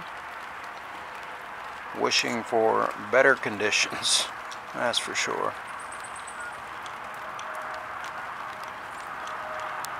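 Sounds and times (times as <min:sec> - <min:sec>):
light ticks: 0:00.0 - 0:02.4, 0:04.4 - 0:04.8, 0:05.6 - 0:09.9
rain falling: 0:00.0 - 0:09.9.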